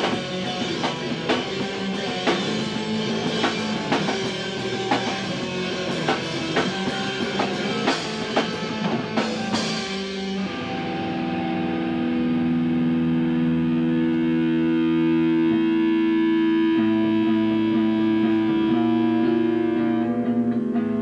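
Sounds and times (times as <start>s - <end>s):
distorted electric guitar chords: 0.0s - 21.0s.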